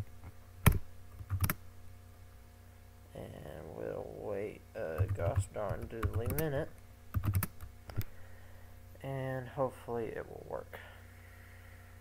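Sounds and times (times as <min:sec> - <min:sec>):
faint steady hum: 0:00.0 - 0:12.0
keyboard keystrokes: 0:00.6 - 0:01.6, 0:05.0 - 0:06.5, 0:07.1 - 0:08.1.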